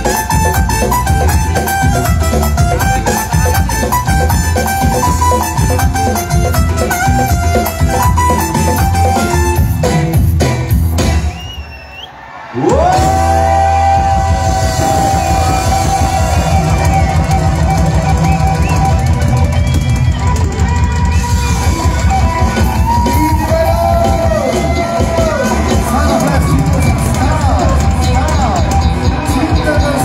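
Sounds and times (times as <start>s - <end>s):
live band music: 0.0s - 11.9s, 12.5s - 30.0s.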